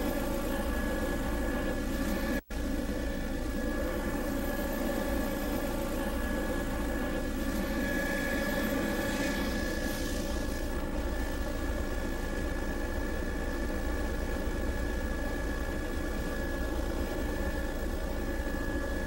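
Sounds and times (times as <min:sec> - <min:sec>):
aircraft engine drone: 0:00.0 - 0:19.0
thin steady whine: 0:00.0 - 0:19.0.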